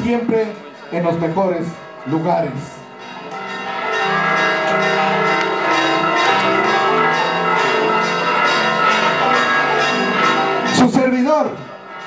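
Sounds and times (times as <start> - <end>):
bells ringing in a peal: 0.0 - 12.0.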